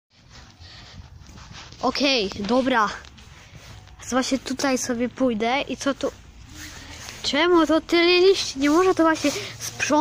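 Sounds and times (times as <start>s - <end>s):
footsteps on paved path: 0.1s - 10.0s
handheld camera rustle: 0.1s - 10.0s.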